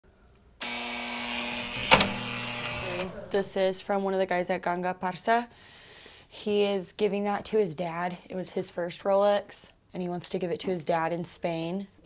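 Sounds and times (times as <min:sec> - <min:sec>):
mechanical whir with hum: 0:00.7 - 0:03.2
sharp click: 0:01.7 - 0:03.1.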